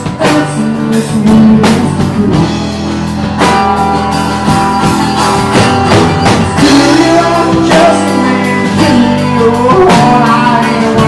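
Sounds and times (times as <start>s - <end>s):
drum kit: 0.0s - 11.0s
strummed guitars: 0.0s - 11.0s.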